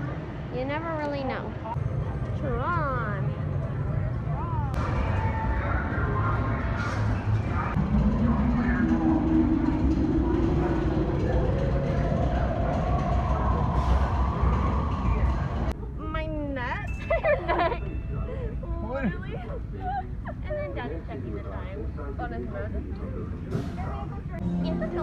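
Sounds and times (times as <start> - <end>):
low rumble: 1.6 - 25.0
rising electronic tone: 7.0 - 15.7.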